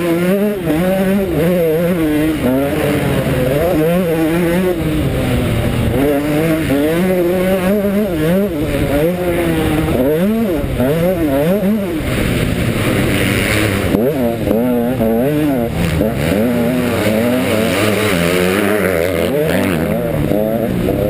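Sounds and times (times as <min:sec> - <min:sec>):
two-stroke motocross engine revving: 0:00.0 - 0:21.0.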